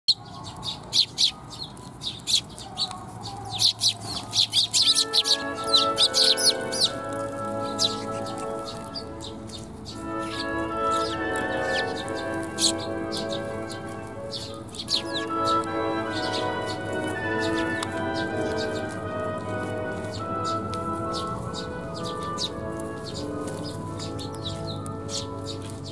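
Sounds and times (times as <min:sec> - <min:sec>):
sparrows chirping: 0:00.1 - 0:25.9
background music of held notes: 0:04.1 - 0:25.9.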